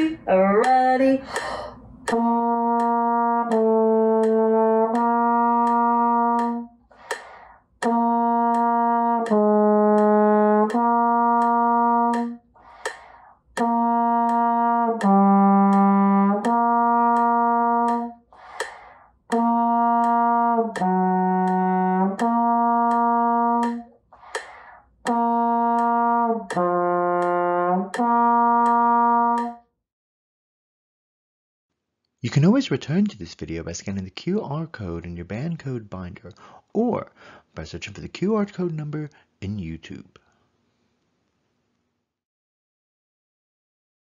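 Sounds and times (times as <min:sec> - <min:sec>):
quick breath: 0:01.2 - 0:01.9, 0:06.9 - 0:07.7, 0:12.6 - 0:13.4, 0:18.3 - 0:19.1, 0:24.2 - 0:24.9, 0:36.4 - 0:37.6
trombone playing long tones: 0:02.1 - 0:06.7, 0:07.8 - 0:12.4, 0:13.6 - 0:18.2, 0:19.3 - 0:23.9, 0:25.1 - 0:29.6.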